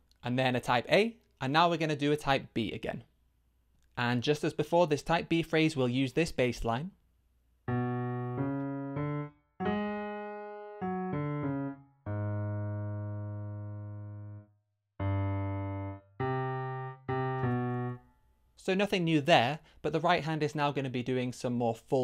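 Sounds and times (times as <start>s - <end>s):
low piano notes: 7.7s - 18.0s.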